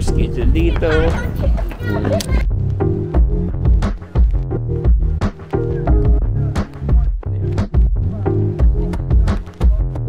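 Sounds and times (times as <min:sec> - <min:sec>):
people talking and laughing: 0:00.0 - 0:02.7
electronic music with steady beat: 0:00.1 - 0:10.0.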